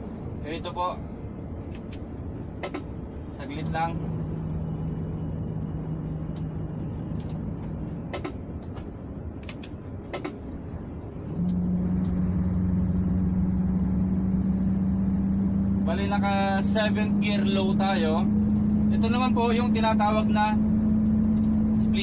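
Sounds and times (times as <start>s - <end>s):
truck diesel engine running: 0.0s - 22.0s
gear shift clicks and knocks: 2.6s - 2.9s, 7.1s - 10.5s.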